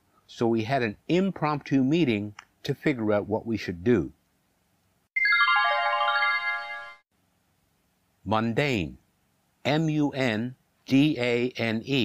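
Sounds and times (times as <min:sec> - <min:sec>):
cascade of ringing chime notes: 0:05.2 - 0:07.0.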